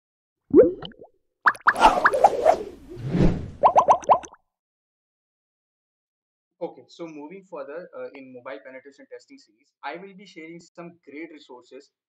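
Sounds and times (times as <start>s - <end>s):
cartoon plop sound effects: 0.5s - 2.2s, 3.6s - 4.4s.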